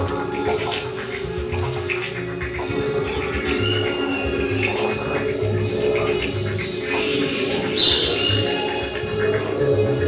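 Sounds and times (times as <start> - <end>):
high chirping synth tones: 7.8 - 8.1.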